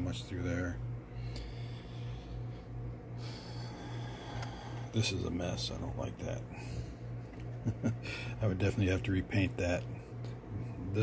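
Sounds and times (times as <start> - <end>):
pulsing mechanical hum: 0.0 - 11.0.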